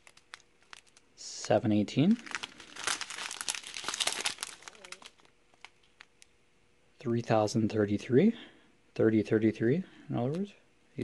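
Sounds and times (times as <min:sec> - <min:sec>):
plastic bags crinkling: 0:00.0 - 0:01.1, 0:02.0 - 0:06.3.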